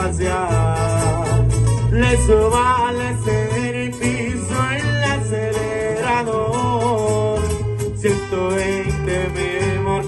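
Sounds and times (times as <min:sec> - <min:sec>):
band playing: 0:00.0 - 0:10.0
plucked and strummed guitars: 0:00.0 - 0:10.0
steady bass line: 0:00.0 - 0:10.0.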